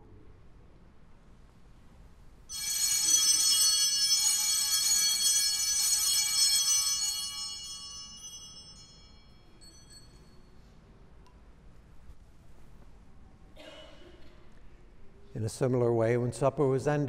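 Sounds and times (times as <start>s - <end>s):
altar bells ringing: 2.5s - 10.7s.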